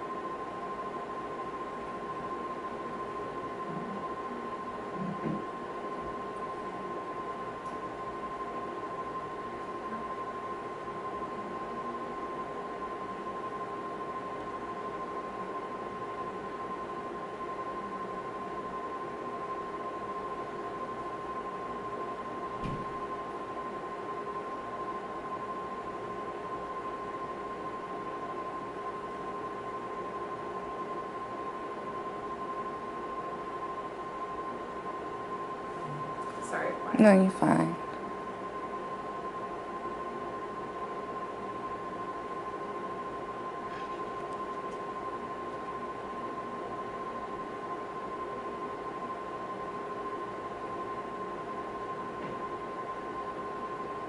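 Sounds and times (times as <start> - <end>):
machine hum with high whine: 0.0 - 54.0.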